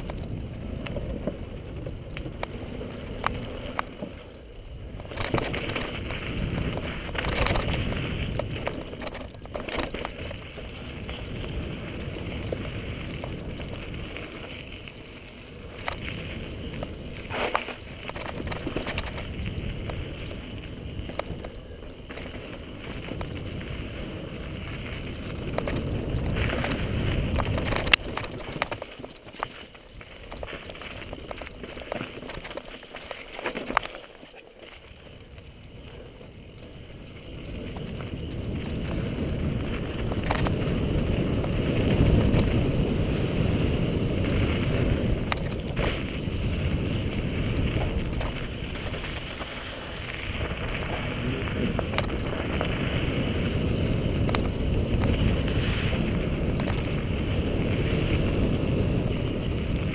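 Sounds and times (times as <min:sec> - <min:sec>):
wind on microphone: 0:00.0 - 0:33.0, 0:35.2 - 0:59.9
bike knocking over rocks: 0:00.0 - 0:43.3, 0:44.0 - 0:58.2
tyres rolling over dirt: 0:00.0 - 0:59.9.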